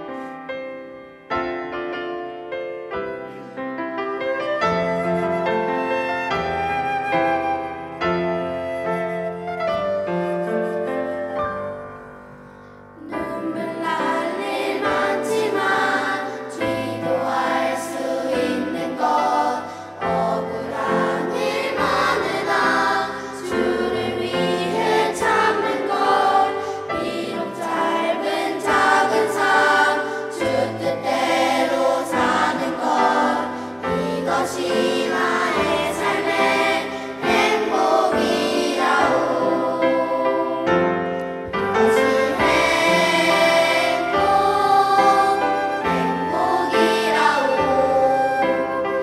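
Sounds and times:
piano accompaniment: 0.0 - 49.0
children's choir singing: 13.0 - 49.0.

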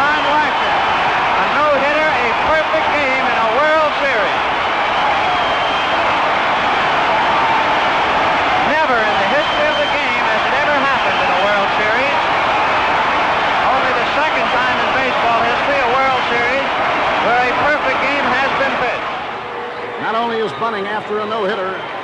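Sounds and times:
stadium crowd cheering: 0.0 - 22.0.

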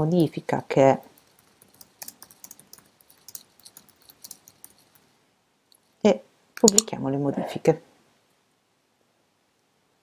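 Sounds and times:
typing on computer keyboard: 1.1 - 5.1.

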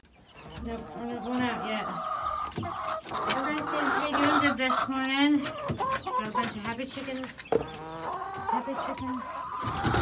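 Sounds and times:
hens clucking and calling: 0.0 - 10.0.

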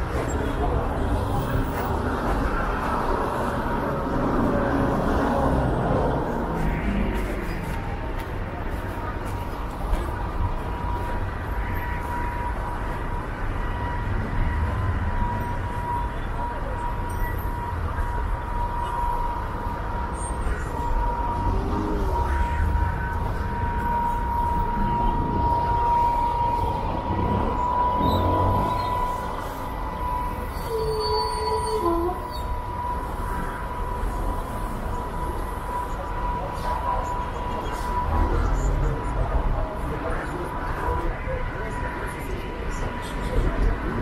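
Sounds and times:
high-pitched whine: 0.0 - 44.0
passersby voices: 0.0 - 44.0
traffic rumble: 0.0 - 44.0.

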